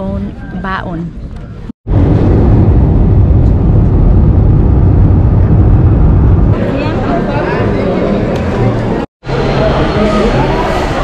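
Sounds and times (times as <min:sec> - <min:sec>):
jet engine and airflow rumble: 0:01.9 - 0:11.0.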